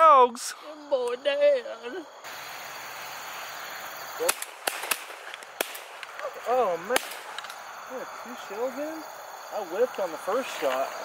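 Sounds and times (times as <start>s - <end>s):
wind hiss: 0.0s - 11.0s.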